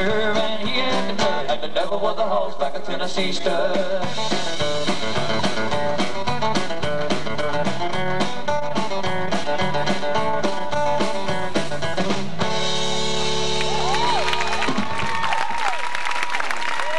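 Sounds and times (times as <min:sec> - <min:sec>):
country-rock band playing: 0:00.0 - 0:02.4, 0:03.1 - 0:15.1.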